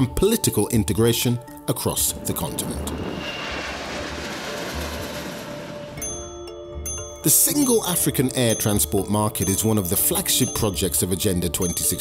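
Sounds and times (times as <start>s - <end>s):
jet airliner taking off: 1.8s - 6.7s.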